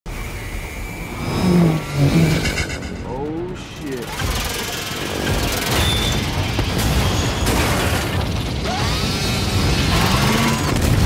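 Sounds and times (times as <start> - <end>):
deep rumble: 0.9 - 11.0
pitched whooshes gliding: 1.2 - 4.1.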